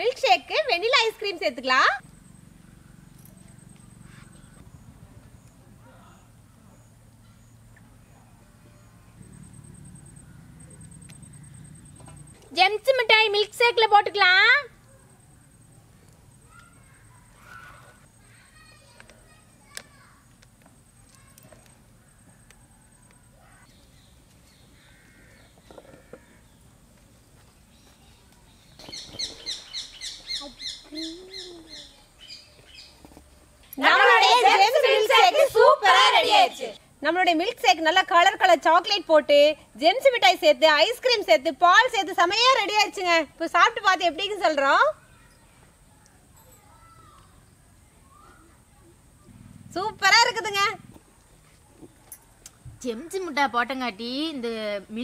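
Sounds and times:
faint distant calls: 0.0 - 55.0
bird calling high slurred notes: 2.0 - 5.5
faint high chirp: 14.8 - 18.4.

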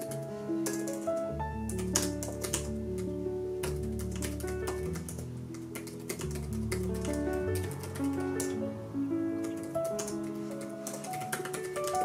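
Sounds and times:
laptop keyboard typing: 0.0 - 8.6, 9.4 - 12.0
soft solo piano music: 0.0 - 12.0.

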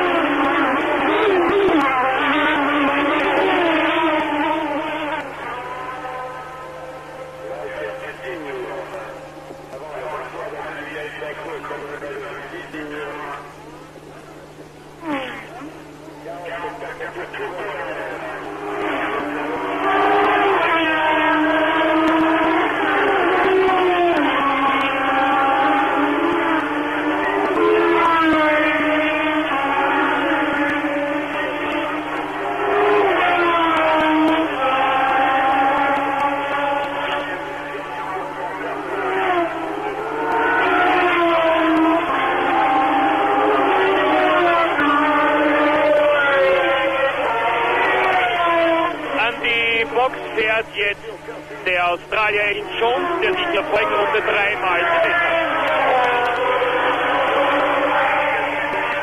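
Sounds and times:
race car engines at full throttle: 0.0 - 59.0.

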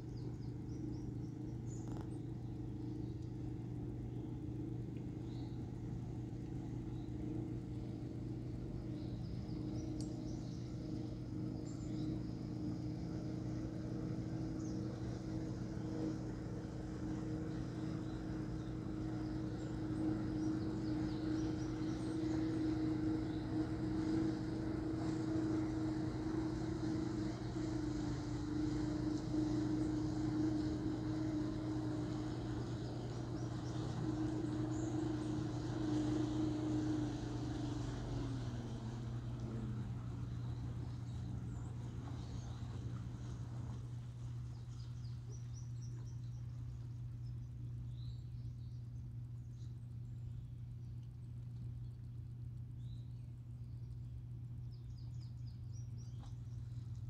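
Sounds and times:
low two-tone motor hum: 0.0 - 57.0.

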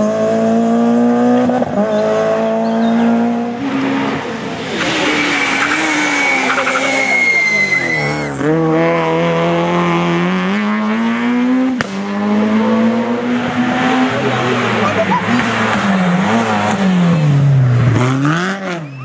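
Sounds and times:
rally car engine revving: 0.0 - 19.0
tyre squeal: 4.8 - 8.4.

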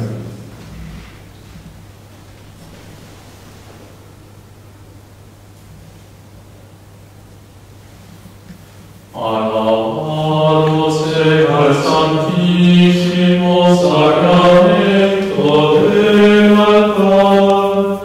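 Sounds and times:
faint electrical hum: 0.0 - 18.0
man chanting: 9.2 - 18.0.

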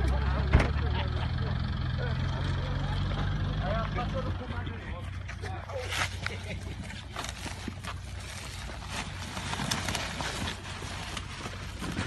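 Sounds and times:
crowd voices: 0.0 - 7.1
vehicle engine idling: 0.0 - 9.8.

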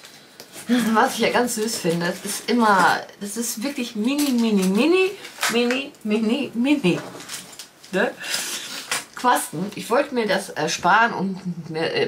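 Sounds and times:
small items clinking and rustling: 3.6 - 5.9, 6.8 - 9.3.

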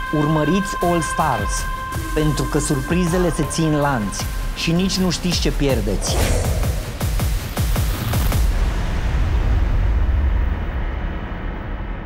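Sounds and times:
deep noisy boom rumble: 5.7 - 11.5.

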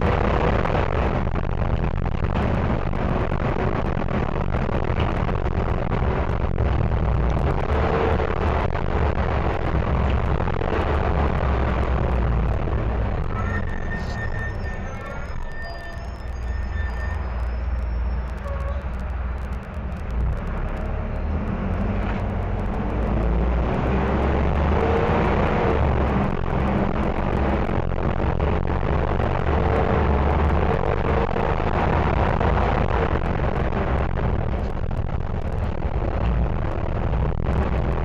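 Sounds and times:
bus diesel engine running: 0.0 - 38.0.

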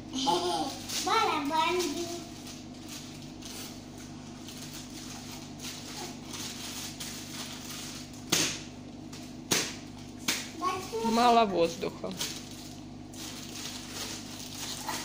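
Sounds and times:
plastic bag crinkling: 0.2 - 8.3, 10.0 - 15.0
plastic bag cracks: 0.4 - 10.9, 12.1 - 15.0.

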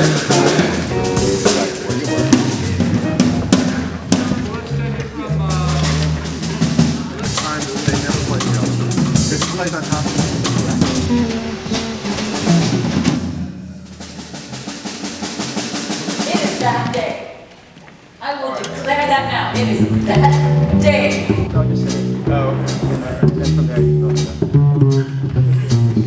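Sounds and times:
piano playing: 0.0 - 14.7, 18.5 - 24.7
bass line: 0.0 - 15.1, 18.6 - 26.0
drum kit: 0.0 - 17.3, 18.6 - 26.0.

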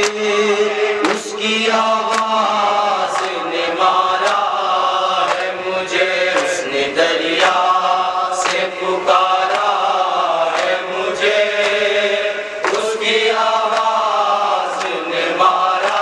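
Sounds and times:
sharp rhythmic beat: 0.0 - 16.0
voices chanting a lament: 0.0 - 16.0.

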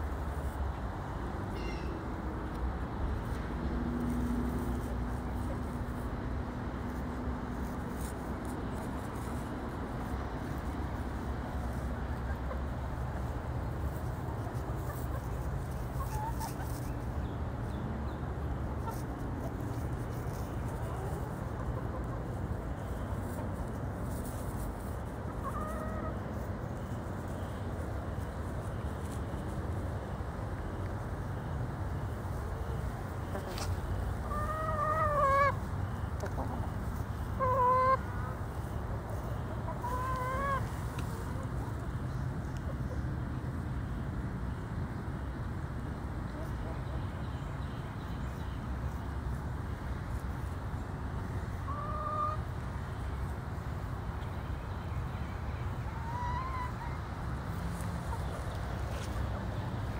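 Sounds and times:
hens clucking softly: 10.5 - 17.0, 18.8 - 27.8, 32.2 - 43.6, 46.2 - 47.2, 51.3 - 54.4, 55.7 - 59.9.

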